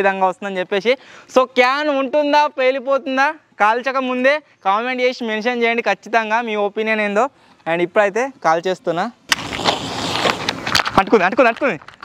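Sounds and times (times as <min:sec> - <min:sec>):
sharp firecracker cracks: 0:09.3 - 0:11.0
firecracker string hissing and crackling: 0:09.3 - 0:12.0.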